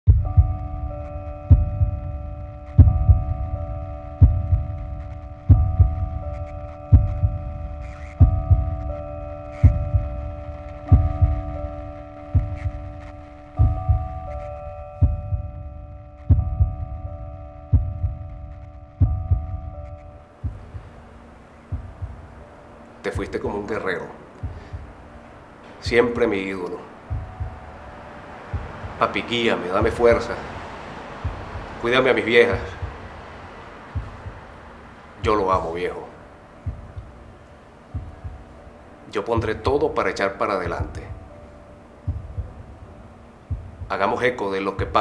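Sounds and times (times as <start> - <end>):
deep heartbeat-like double thumps: 0.1 - 2.2, 2.8 - 9.0, 9.6 - 13.0, 13.6 - 14.3, 15.0 - 21.1, 21.7 - 22.4, 24.4 - 25.0, 27.1 - 27.8, 28.5 - 29.1, 29.8 - 30.3, 31.2 - 31.8, 32.5 - 33.3, 33.9 - 35.6, 36.6 - 37.3, 37.9 - 38.6, 42.1 - 44.0
sustained chord drone: 0.1 - 45.0.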